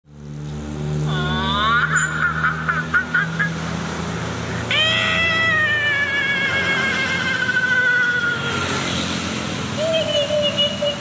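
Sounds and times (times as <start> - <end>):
eerie high-pitched wailing: 4.7 - 9.0.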